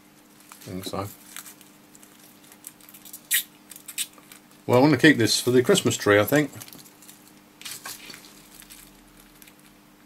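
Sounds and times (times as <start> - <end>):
faint steady hum: 0.0 - 10.0
plastic film rustling: 0.2 - 9.8.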